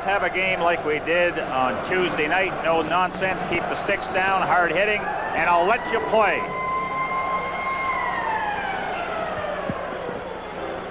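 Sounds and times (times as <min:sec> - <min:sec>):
arena crowd noise: 0:00.0 - 0:10.9.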